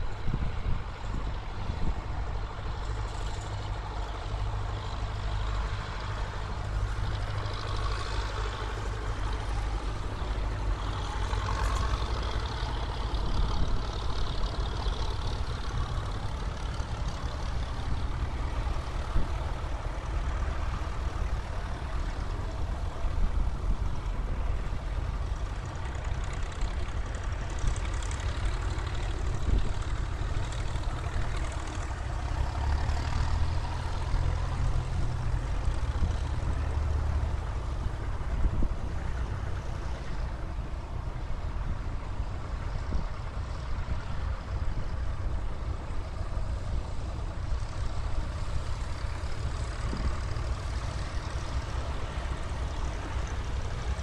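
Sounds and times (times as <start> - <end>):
tractor engines rumbling: 0.0 - 54.0.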